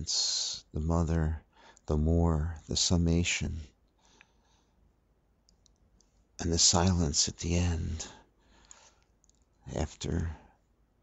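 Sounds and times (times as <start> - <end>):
small clicks: 5.4 - 6.2, 8.6 - 9.6.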